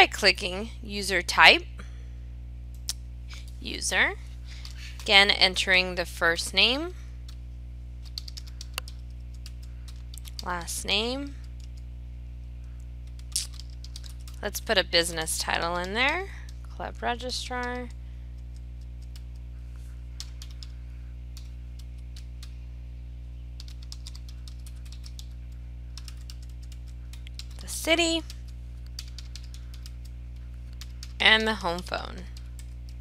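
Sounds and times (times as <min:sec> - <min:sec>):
steady low hum: 0:00.0 - 0:33.0
computer keyboard keys clicking: 0:08.0 - 0:10.5, 0:11.4 - 0:11.8, 0:13.0 - 0:14.4, 0:17.5 - 0:19.4, 0:20.2 - 0:20.8, 0:23.6 - 0:30.1, 0:30.7 - 0:31.5.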